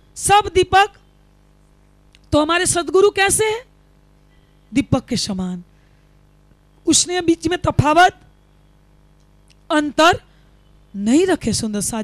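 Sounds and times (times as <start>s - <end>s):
faint steady hum: 0.0s - 12.0s
woman speaking into a microphone: 0.2s - 1.0s, 2.3s - 3.7s, 4.7s - 5.7s, 6.9s - 8.2s, 9.7s - 10.3s, 11.0s - 12.0s.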